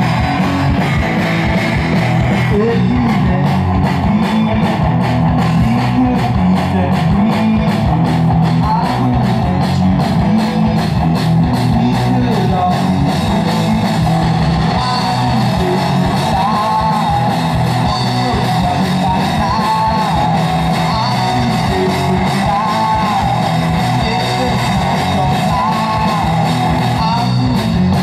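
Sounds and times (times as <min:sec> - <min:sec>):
rock band playing: 0:00.0 - 0:28.0.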